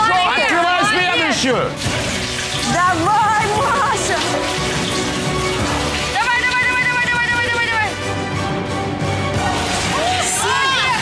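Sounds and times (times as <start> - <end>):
background music: 0.0 - 11.0
water sloshing and bubbling: 1.3 - 7.0.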